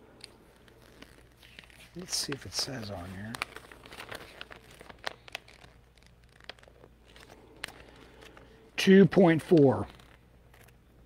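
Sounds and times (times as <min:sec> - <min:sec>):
light clicks of paper handling: 0:00.2 - 0:10.8
paper rustling: 0:00.5 - 0:10.8.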